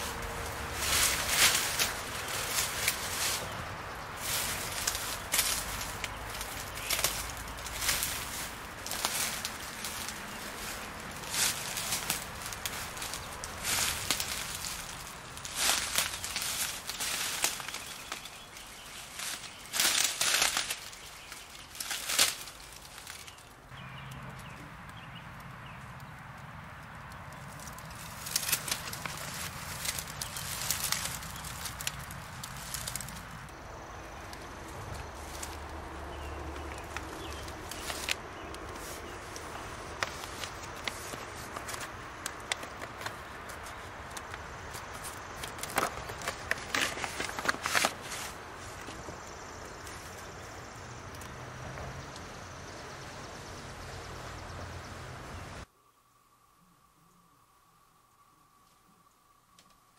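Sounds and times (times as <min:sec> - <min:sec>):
footsteps in dry leaves: 0:00.0 - 0:24.6, 0:27.0 - 0:51.3.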